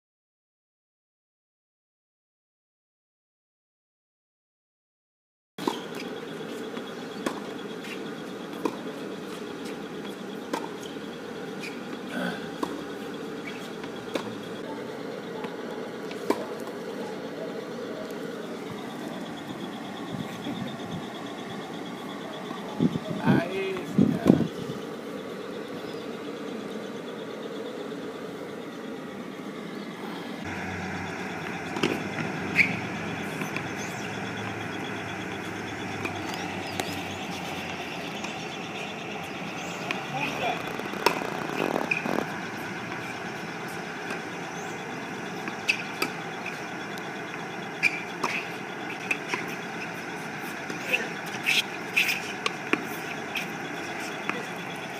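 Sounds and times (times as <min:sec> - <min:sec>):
traffic noise: 0:05.6 - 0:54.9
tennis balls being struck: 0:10.0 - 0:14.6, 0:16.2 - 0:16.8, 0:30.5 - 0:54.9
people talking: 0:14.4 - 0:21.1, 0:21.9 - 0:24.7, 0:39.9 - 0:40.9, 0:50.4 - 0:54.9.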